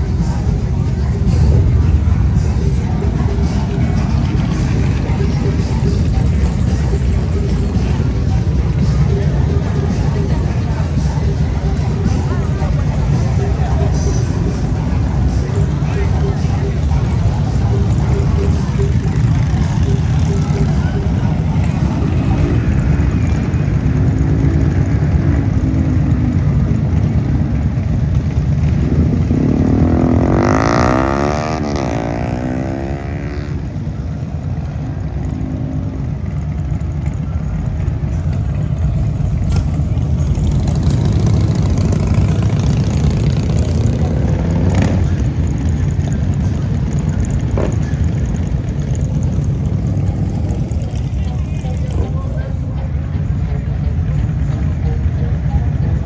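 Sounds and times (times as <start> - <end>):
motorcycle engines rumbling: 0.0 - 56.0.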